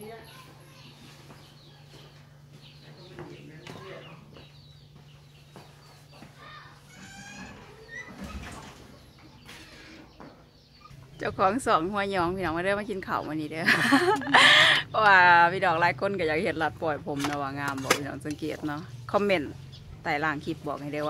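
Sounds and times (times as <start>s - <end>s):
faint chickens clucking: 0.0s - 11.4s
distant voices: 0.0s - 21.0s
steady low hum: 0.4s - 21.0s.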